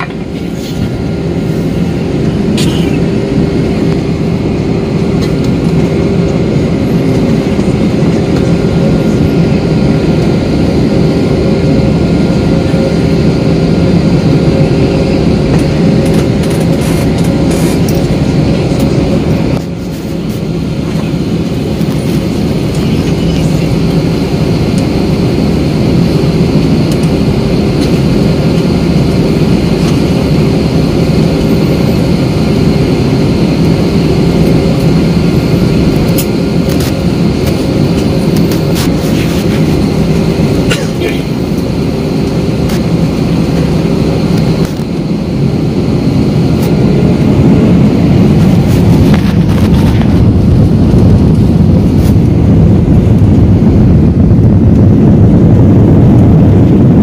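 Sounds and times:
jet engines roaring: 0:00.0 - 0:57.0
wheels rumbling on runway: 0:00.0 - 0:57.0.

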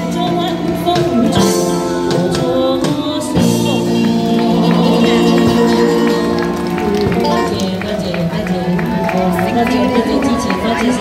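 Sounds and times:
crowd voices: 0:00.0 - 0:11.0
live band with electric guitar: 0:00.0 - 0:11.0
people clapping: 0:03.6 - 0:11.0.

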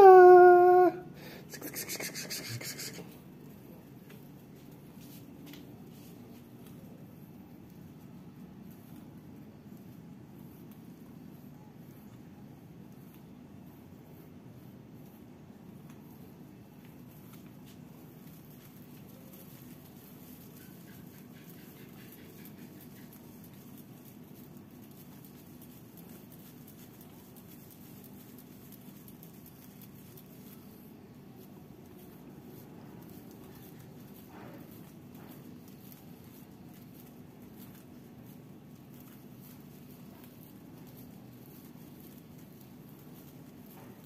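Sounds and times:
kittens mewing: 0:00.0 - 0:03.2
low background hum: 0:00.0 - 0:44.0
scratchy rasps of plastic toy: 0:01.5 - 0:03.2.

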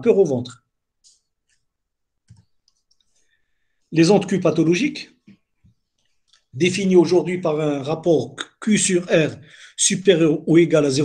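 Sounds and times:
man's voice: 0:03.9 - 0:05.2, 0:06.6 - 0:11.0.

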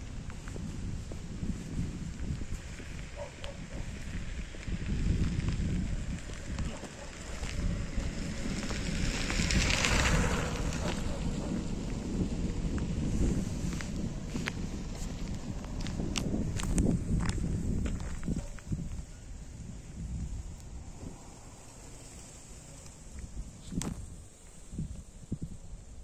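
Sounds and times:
grass and leaves rustling: 0:00.0 - 0:26.0
wind rumbling on microphone: 0:00.0 - 0:26.0.

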